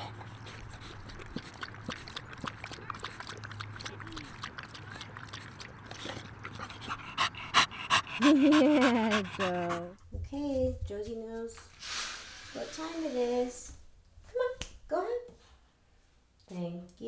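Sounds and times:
dog lapping water: 0:00.0 - 0:09.9
brief hiss: 0:11.7 - 0:13.6.

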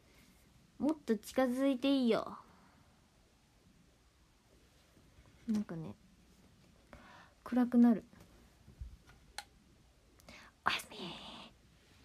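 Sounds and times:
woman whispering: 0:10.6 - 0:11.6.

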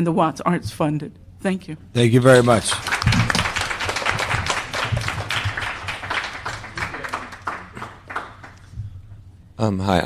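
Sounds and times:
audience applauding: 0:02.3 - 0:08.7.

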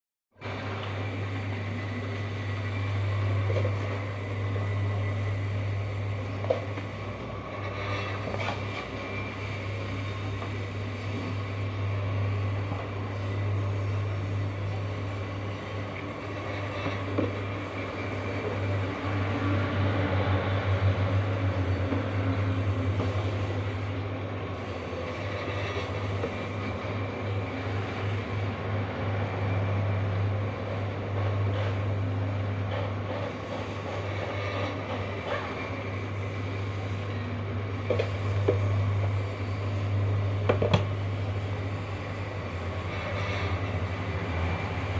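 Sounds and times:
low machine hum: 0:00.4 - 0:44.9.

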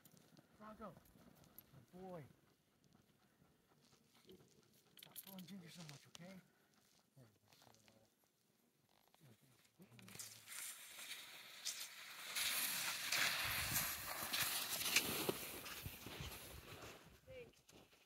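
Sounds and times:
scuffling and crunching in snow: 0:10.1 - 0:17.1.

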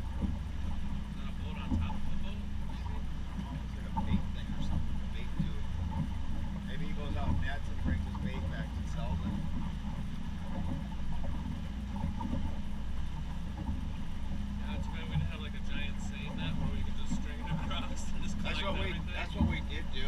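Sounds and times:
motorboat engine running: 0:00.0 - 0:20.0.

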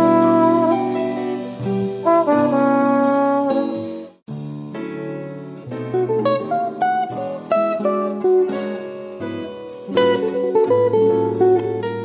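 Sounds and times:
instrumental jazz with brass: 0:00.0 - 0:05.0, 0:05.6 - 0:12.0.

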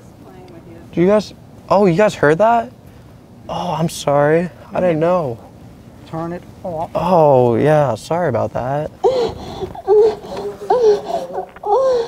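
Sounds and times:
high-pitched giggling: 0:09.0 - 0:12.0.

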